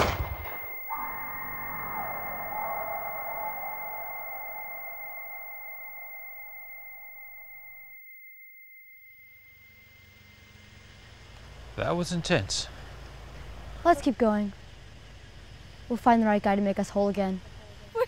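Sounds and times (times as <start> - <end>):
high-pitched ringing tone: 0.0 - 11.8.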